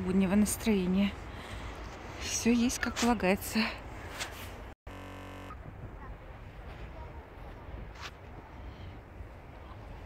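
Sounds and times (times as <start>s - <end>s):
steady buzzing: 4.9s - 5.7s.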